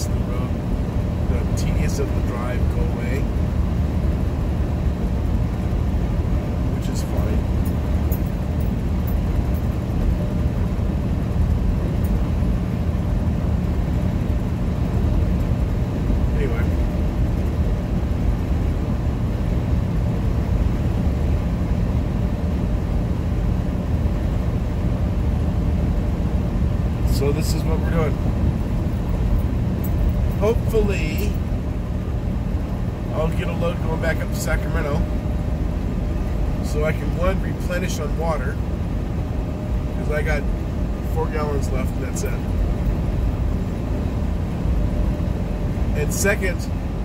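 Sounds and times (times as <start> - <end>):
truck engine and road noise: 0.0 - 47.0.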